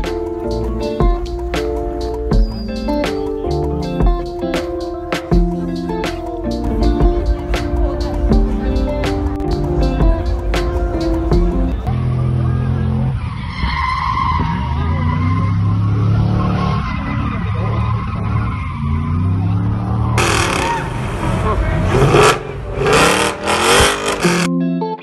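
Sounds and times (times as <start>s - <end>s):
music: 0.0s - 13.0s, 23.8s - 25.0s
tyres skidding and squealing: 1.6s - 4.0s, 11.9s - 24.5s
car engine revving high: 14.2s - 24.5s.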